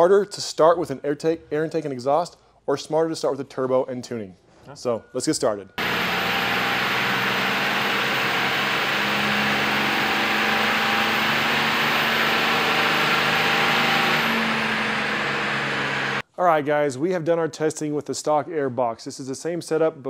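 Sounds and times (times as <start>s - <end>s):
diesel engine at high revs: 5.8s - 16.2s.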